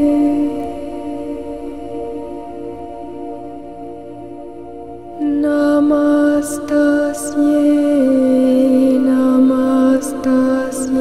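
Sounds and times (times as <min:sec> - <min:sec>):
devotional chant on held notes: 0:00.0 - 0:11.0.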